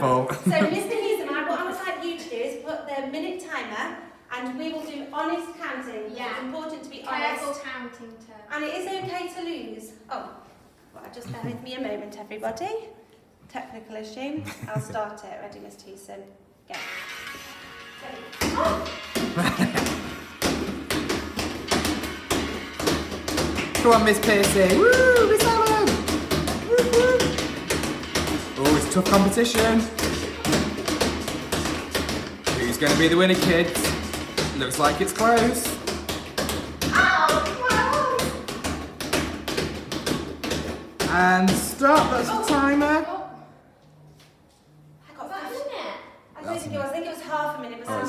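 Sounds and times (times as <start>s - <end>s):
balls thudding against wall: 18.3s - 43.1s.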